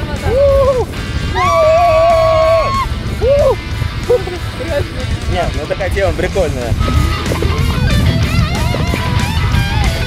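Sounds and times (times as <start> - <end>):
wind rumble on microphone: 0.0 - 10.0
person yelling: 0.2 - 3.6
person whooping: 0.3 - 3.6.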